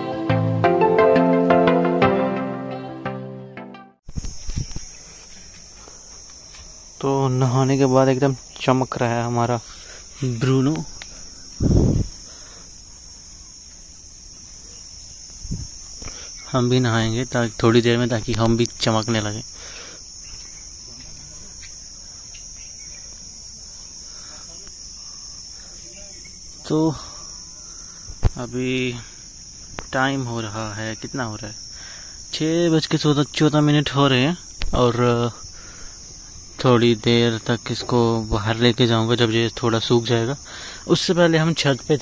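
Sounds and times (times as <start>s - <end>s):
insects chirring: 4.0s - 42.0s
man speaking: 10.2s - 10.9s.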